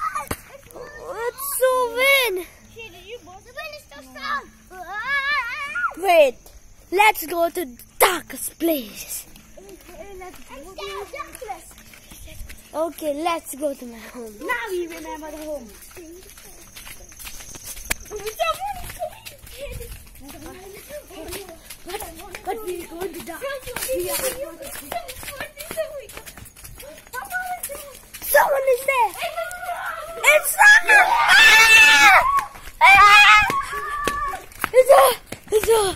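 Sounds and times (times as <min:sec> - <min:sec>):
children talking quietly: 0:00.0 - 0:35.9.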